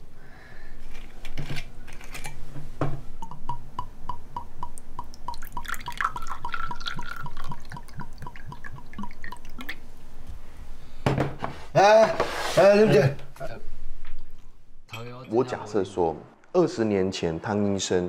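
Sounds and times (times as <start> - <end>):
liquid glugging into glass: 5.0 - 9.8.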